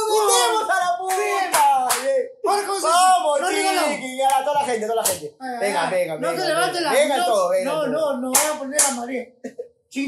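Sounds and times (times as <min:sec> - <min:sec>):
man yelling: 0:00.0 - 0:05.0
hand claps: 0:01.0 - 0:02.2, 0:04.2 - 0:05.3, 0:08.3 - 0:09.0.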